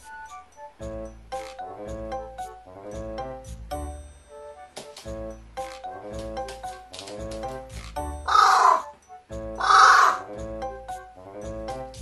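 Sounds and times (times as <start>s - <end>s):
crow cawing: 8.3s - 8.9s, 9.6s - 10.3s.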